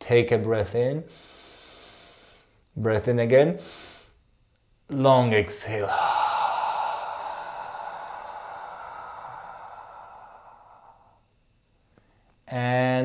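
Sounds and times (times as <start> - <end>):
man exhaling slowly: 1.1 - 2.5, 5.6 - 11.4.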